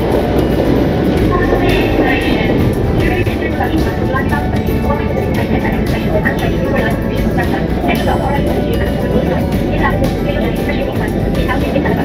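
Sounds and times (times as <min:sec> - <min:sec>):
background music: 0:00.0 - 0:12.0
escalator rumbling: 0:00.0 - 0:12.0
indistinct voices: 0:00.0 - 0:12.0.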